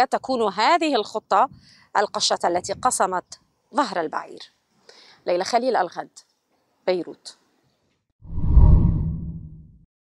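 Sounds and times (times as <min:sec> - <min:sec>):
deep whoosh: 0:08.2 - 0:09.8.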